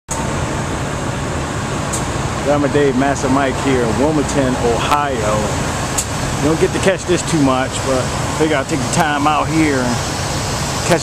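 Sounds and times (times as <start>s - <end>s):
road traffic rumble: 0.1s - 11.0s.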